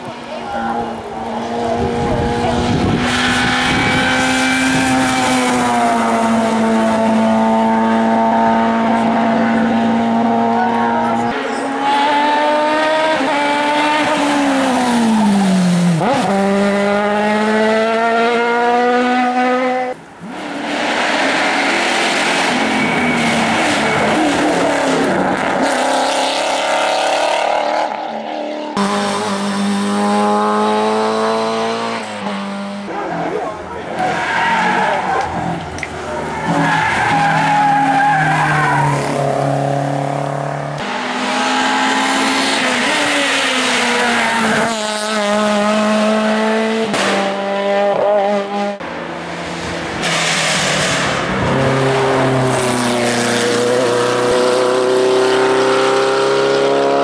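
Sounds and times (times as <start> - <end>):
race car engines at high revs: 0.0 - 57.0.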